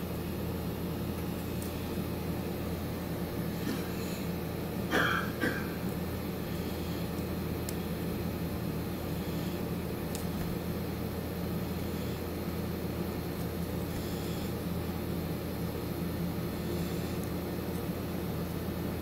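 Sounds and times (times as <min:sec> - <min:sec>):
air conditioner humming: 0:00.0 - 0:19.0.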